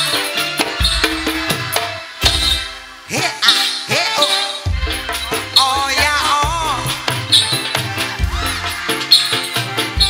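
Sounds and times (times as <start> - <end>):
live band music with heavy bass: 0.0 - 10.0.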